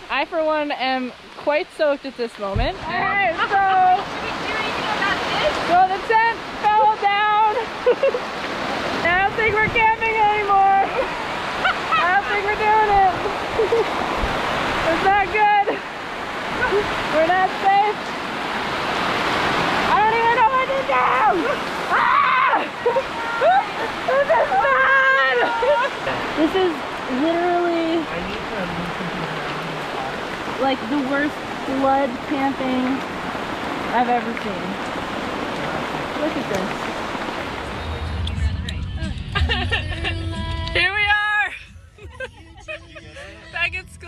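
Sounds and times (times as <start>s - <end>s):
heavy rain pouring: 0.0s - 41.6s.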